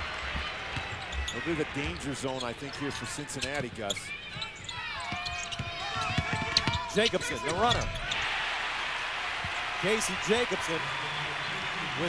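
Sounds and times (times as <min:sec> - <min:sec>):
arena crowd noise: 0:00.0 - 0:12.0
sneakers squeaking on hardwood: 0:00.3 - 0:08.2
basketball bouncing: 0:05.1 - 0:06.8.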